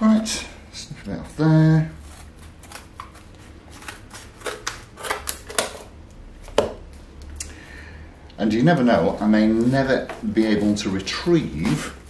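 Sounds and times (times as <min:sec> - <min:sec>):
scissors cutting foam: 0:02.0 - 0:05.6.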